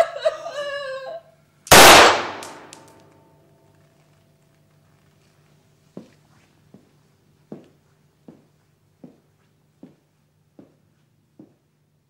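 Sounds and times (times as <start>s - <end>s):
loud gunshot: 1.7s - 2.8s.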